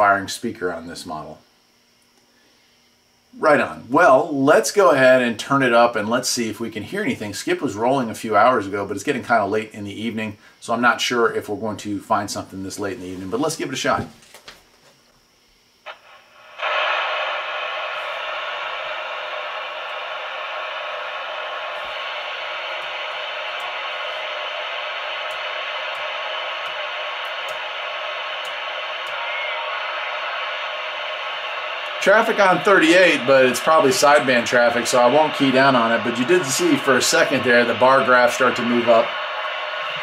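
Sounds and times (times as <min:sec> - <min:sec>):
radio static hiss: 0:00.0 - 0:14.3, 0:15.8 - 0:40.0.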